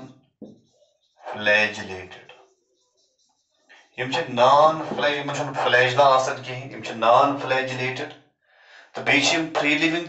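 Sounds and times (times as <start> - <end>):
marker scratching on whiteboard: 0.0 - 7.6
man's voice: 1.2 - 2.4, 3.9 - 8.1, 8.8 - 10.0.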